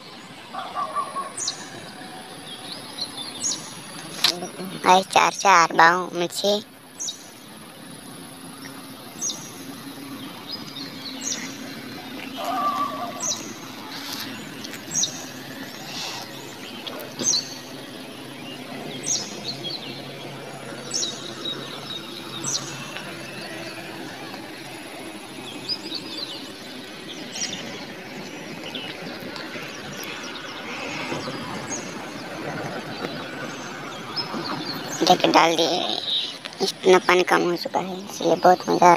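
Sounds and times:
bird chirping: 0.0 - 38.9
outdoor background noise: 0.0 - 38.9.

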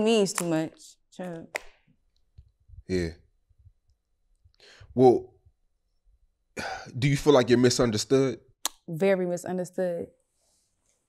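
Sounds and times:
person breathing: 4.5 - 5.0.

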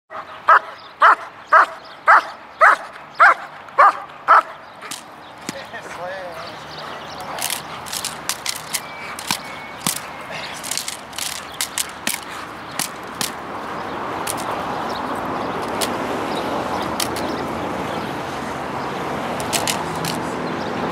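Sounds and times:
dog barking: 0.1 - 4.6
stick hitting sharp cracks: 4.8 - 5.7, 7.3 - 13.5, 14.2 - 14.6, 15.6 - 16.0, 16.8 - 17.4, 19.4 - 20.2.

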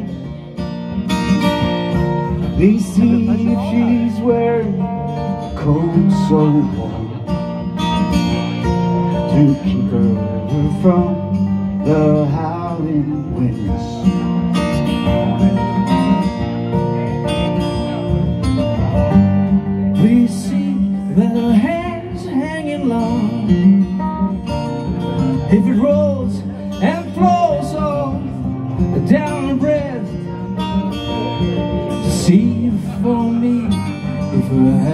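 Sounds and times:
man singing: 0.0 - 0.7, 2.2 - 16.5, 18.9 - 34.9
acoustic guitars playing: 0.0 - 34.9.

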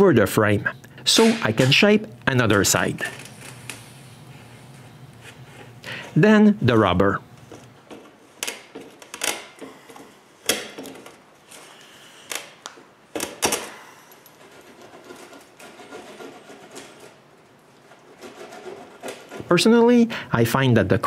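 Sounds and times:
spline roller clicks and crinkles: 2.8 - 4.0, 14.3 - 19.5.

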